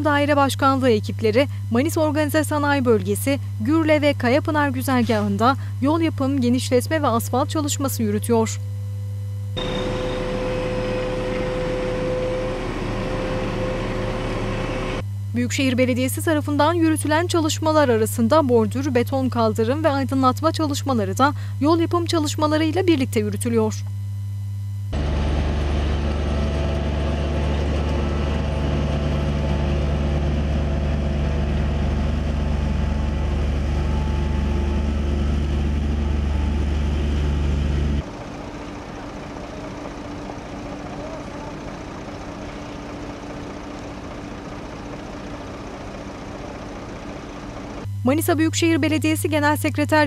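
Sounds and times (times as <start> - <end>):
road paving machinery diesel drone: 9.6 - 15.3, 24.9 - 48.0.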